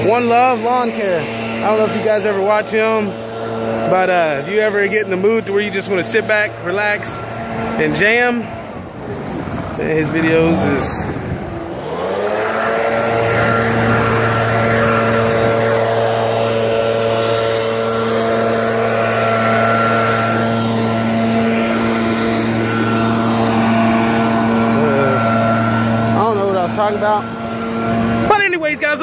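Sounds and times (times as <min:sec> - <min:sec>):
leaf blower engine revving: 0:00.0 - 0:29.0
rush of air: 0:08.6 - 0:16.6.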